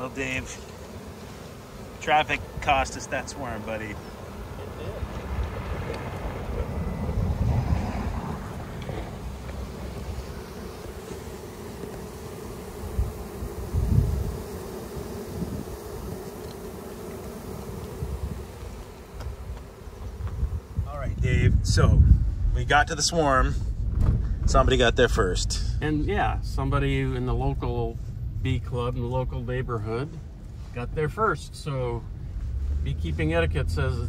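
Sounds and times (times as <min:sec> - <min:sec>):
bee swarm humming: 0:00.0 - 0:34.0
low rumbles: 0:18.0 - 0:34.0.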